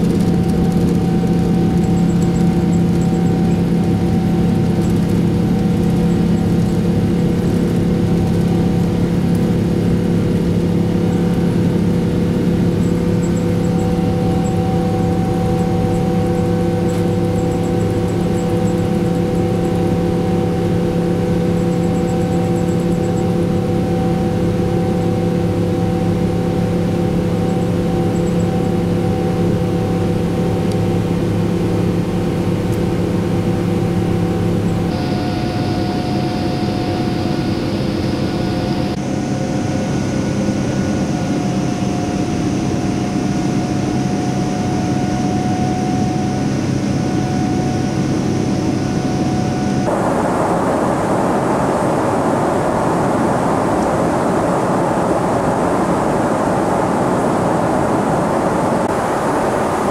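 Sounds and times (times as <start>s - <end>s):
jet engine hum in cabin: 0.0s - 59.9s
rush of air: 49.8s - 59.9s.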